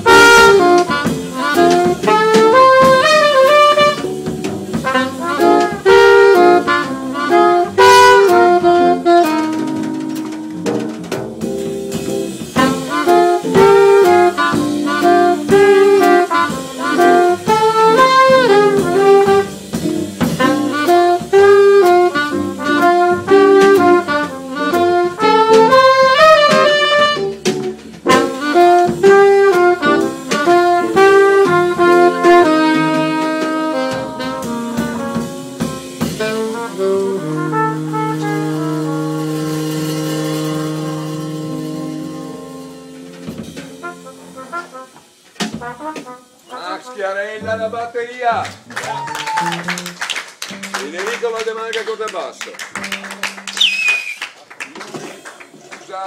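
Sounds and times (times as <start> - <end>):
alto saxophone melody: 0.0 - 47.7, 49.0 - 50.9, 52.8 - 54.2
drum kit: 0.0 - 56.0
jazz band accompaniment: 0.0 - 56.0.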